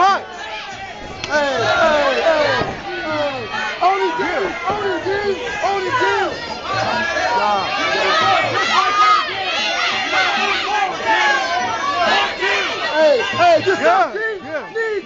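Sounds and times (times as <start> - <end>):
crowd shouting and yelling: 0.0 - 15.0.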